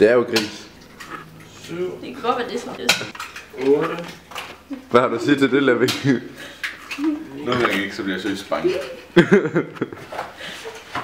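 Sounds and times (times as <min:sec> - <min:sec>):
person laughing: 0:08.6 - 0:10.8.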